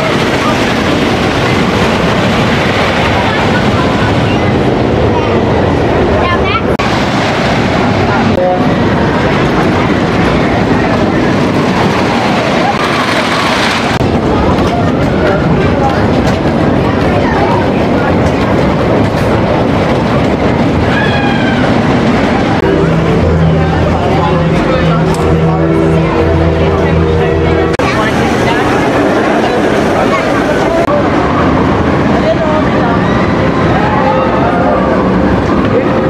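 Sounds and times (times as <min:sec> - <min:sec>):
roller coaster on wooden track: 0:00.0 - 0:36.0
low multi-tone hum: 0:20.4 - 0:36.0
riders yelling and screaming: 0:20.8 - 0:22.0.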